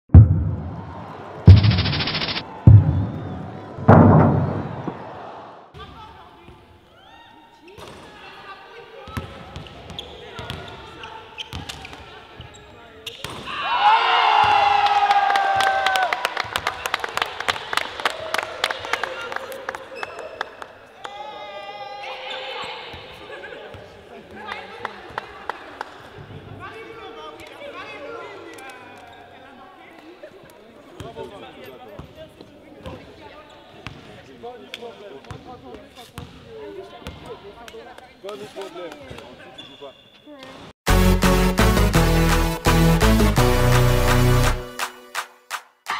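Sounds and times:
players shouting and cheering: 0:00.2 - 0:05.7, 0:13.4 - 0:16.2.

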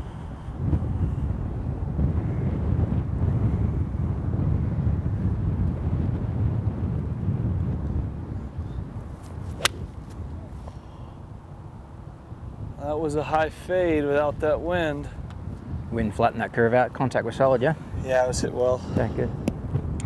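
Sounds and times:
wind buffeting microphone: 0:00.0 - 0:20.0
golf club striking ball: 0:09.2 - 0:10.5.

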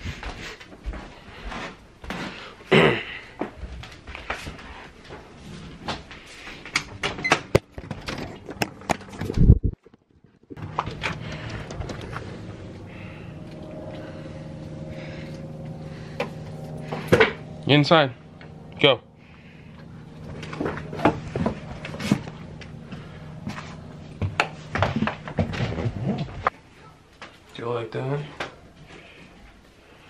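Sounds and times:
footsteps going down stairs: 0:00.0 - 0:02.6, 0:03.3 - 0:14.9, 0:20.2 - 0:26.6
low tones: 0:10.5 - 0:27.0
steady hum: 0:10.5 - 0:30.0.

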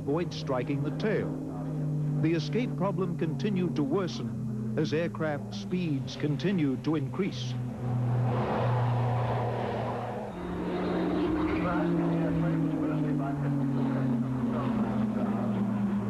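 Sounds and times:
propeller aircraft engines droning: 0:00.0 - 0:16.0.

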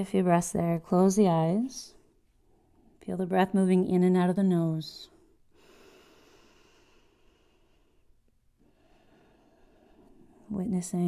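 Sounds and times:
soft breath through the nose: 0:05.5 - 0:10.4.

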